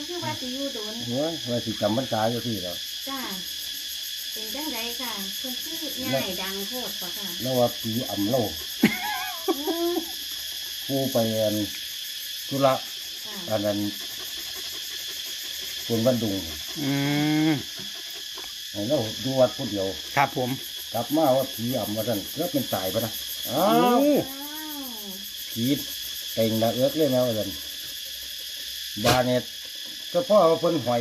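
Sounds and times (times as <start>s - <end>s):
insects droning: 0.0s - 31.0s
person speaking: 18.8s - 24.4s.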